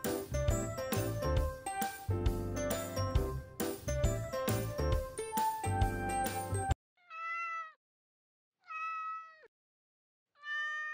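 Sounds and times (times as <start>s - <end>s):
background music: 0.0s - 6.8s
cat meowing: 7.0s - 7.8s, 8.6s - 9.5s, 10.4s - 10.9s.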